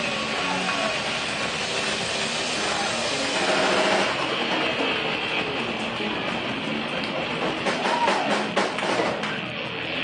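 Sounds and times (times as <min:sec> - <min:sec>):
loud electric guitar: 0:00.0 - 0:10.0
drum hits: 0:02.6 - 0:09.5.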